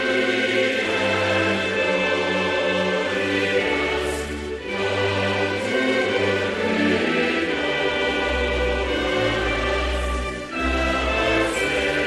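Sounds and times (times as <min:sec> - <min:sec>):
choir holding sustained chords: 0:00.0 - 0:12.0.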